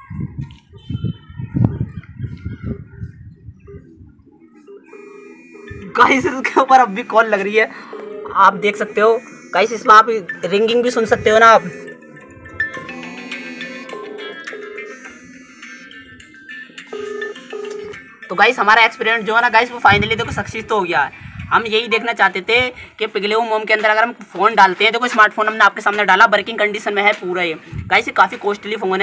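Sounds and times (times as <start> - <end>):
phone ringing tone: 4.6 - 18.1
faint higher calls: 6.8 - 14.2.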